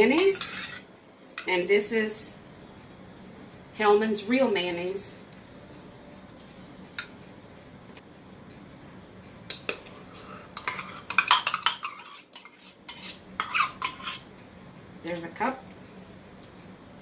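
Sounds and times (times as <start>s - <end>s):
metal spoon scraping a metal cup: 10.5s - 14.3s.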